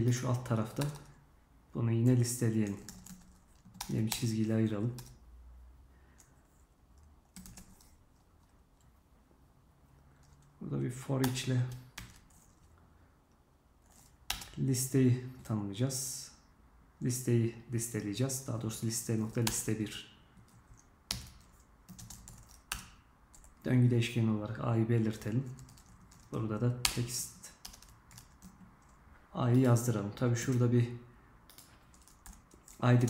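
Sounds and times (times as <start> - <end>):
faint room noise: 0.0 - 33.0
computer keyboard keystrokes: 0.1 - 1.2, 2.6 - 4.3, 4.9 - 5.2, 7.0 - 8.5, 11.2 - 12.7, 13.9 - 14.6, 20.4 - 23.6, 25.2 - 29.8, 31.5 - 32.8.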